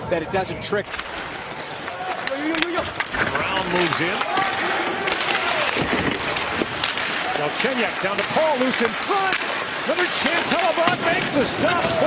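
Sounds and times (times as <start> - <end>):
arena noise: 0.0 - 12.0
hockey sticks clacking on puck: 0.9 - 12.0
skates scraping on ice: 0.9 - 12.0.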